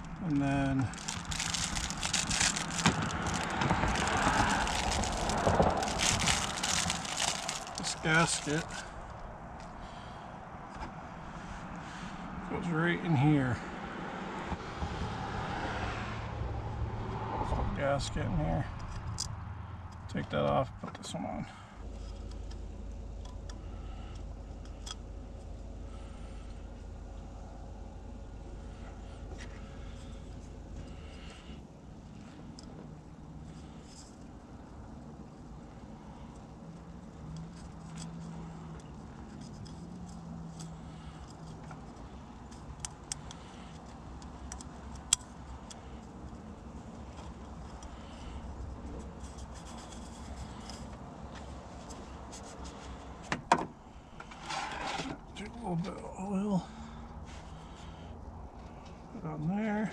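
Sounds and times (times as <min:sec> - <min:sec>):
low steady rumble: 0:00.0 - 0:13.8, 0:16.0 - 0:59.9.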